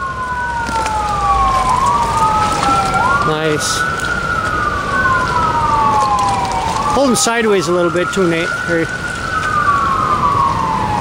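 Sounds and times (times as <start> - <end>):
emergency siren wailing: 0.0 - 11.0.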